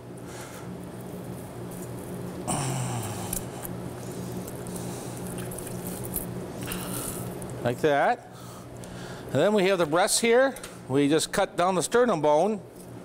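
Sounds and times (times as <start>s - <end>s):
steady low hum: 0.0s - 13.0s
wet skin tearing: 3.0s - 7.6s.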